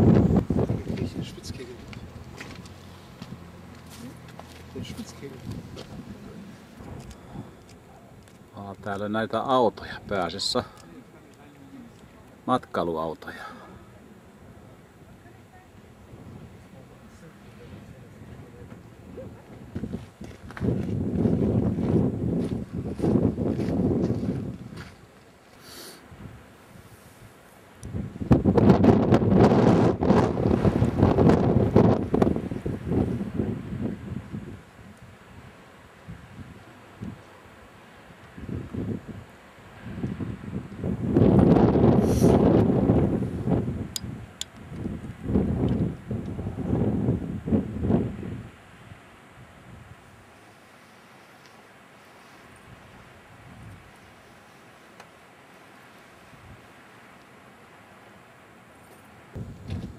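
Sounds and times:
wind gusting against microphone: 0.0 - 25.2, 26.0 - 50.8, 51.7 - 55.5, 56.2 - 57.0, 57.8 - 59.9.

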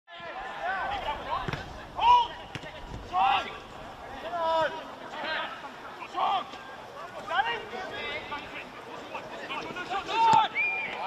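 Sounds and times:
people shouting short calls: 0.1 - 11.0
ball being kicked: 1.4 - 1.7.

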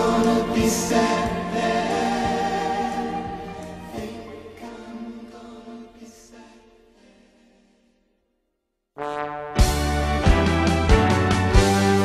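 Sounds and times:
layered singing over slow beat: 0.0 - 7.6.

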